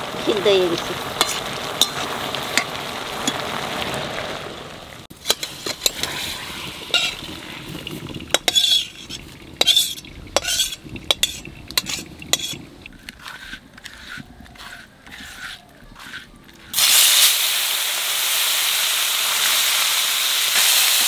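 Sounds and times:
vegetables sizzling in a wok: 0.0 - 12.6, 15.2 - 21.0
metal spatula scraping wok: 1.1 - 3.4, 5.1 - 17.3.

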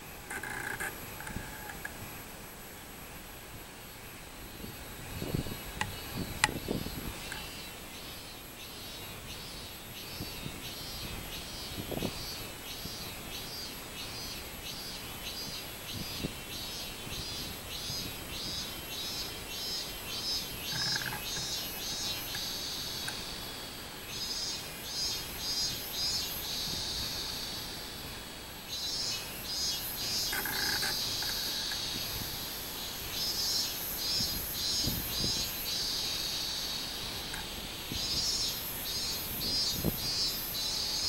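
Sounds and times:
cicada singing pulsed buzz: 0.0 - 41.0.

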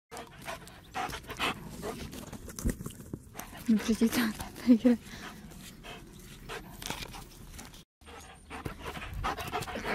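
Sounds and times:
dog panting: 0.1 - 2.2, 3.3 - 9.9.

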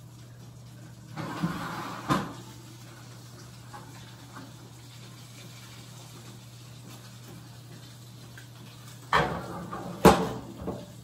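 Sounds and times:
kitchen handling knocks: 9.2 - 10.8.

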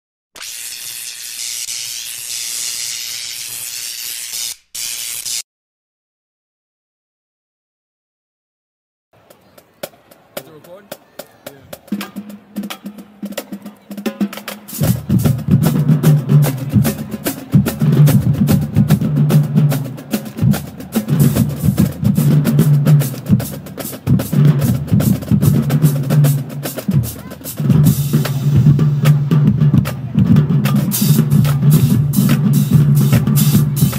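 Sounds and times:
marching drumline playing: 9.6 - 33.9.

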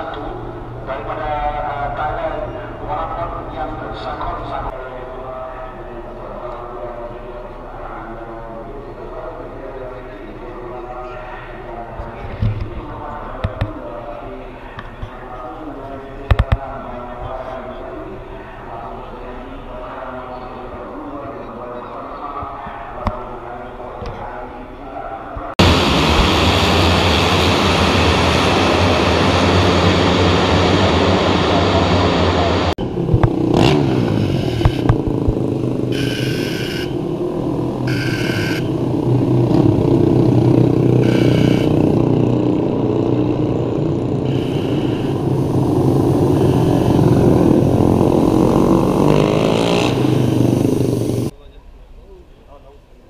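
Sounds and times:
motorcycle engines revving: 25.4 - 51.3
motorcycle engines running: 25.4 - 51.3.

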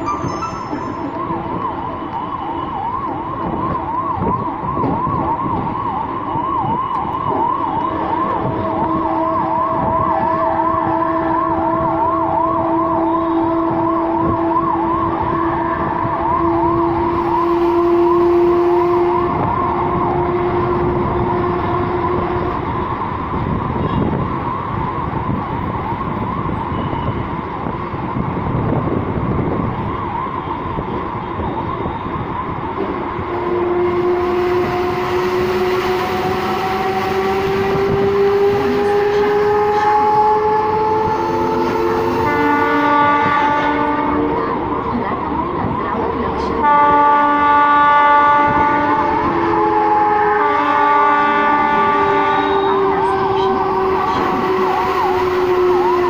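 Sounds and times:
warbling siren-like tone: 0.0 - 23.2, 29.3 - 46.6, 48.6 - 56.0
electric train whine: 0.0 - 56.0.

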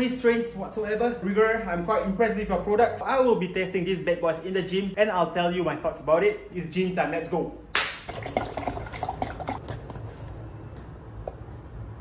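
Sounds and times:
liquid sloshing in cup: 8.0 - 10.4.

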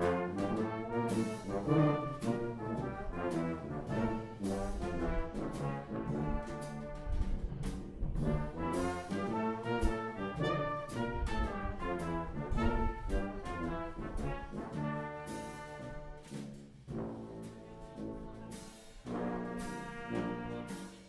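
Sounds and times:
drum kit beat: 0.0 - 21.0
trumpets playing melody: 0.0 - 21.0
tubas: 0.0 - 21.0.

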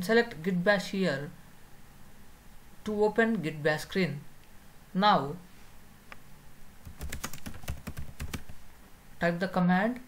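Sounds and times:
computer keyboard typing: 6.8 - 8.6.

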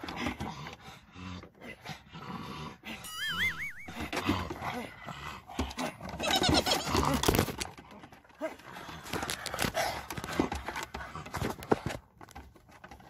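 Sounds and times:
wavering whistle-like tone: 3.0 - 4.2
dog claws clicking on deck: 5.5 - 13.0.

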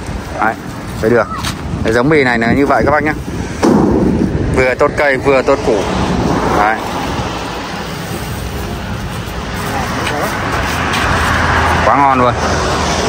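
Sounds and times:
road noise: 0.0 - 13.0.

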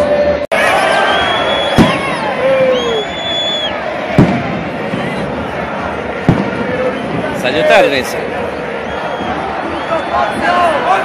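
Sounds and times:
stadium crowd noise: 0.0 - 11.0
firework bang: 1.6 - 2.7, 4.0 - 7.4.

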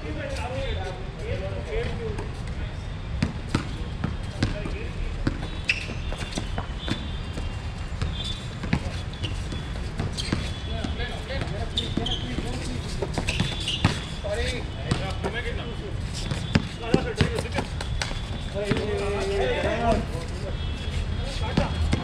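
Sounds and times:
basketball bouncing on hard court: 3.2 - 14.1, 14.9 - 15.3, 16.2 - 19.0.

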